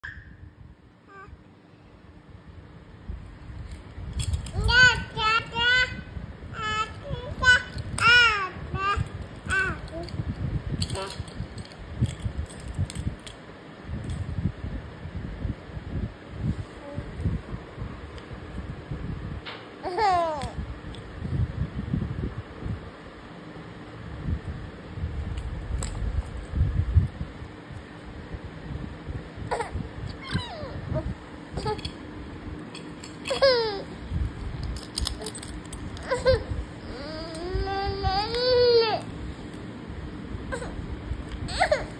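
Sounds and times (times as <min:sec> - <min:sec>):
toddler whimpering: 0:29.5 - 0:31.8, 0:33.3 - 0:33.9, 0:36.0 - 0:39.0, 0:41.5 - 0:41.9
baby babbling: 0:36.1 - 0:39.0.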